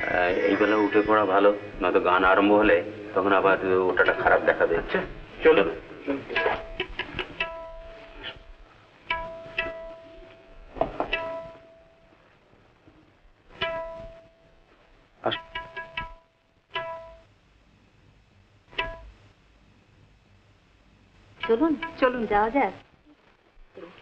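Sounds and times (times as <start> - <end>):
pizzicato strings: 0.0 - 8.4.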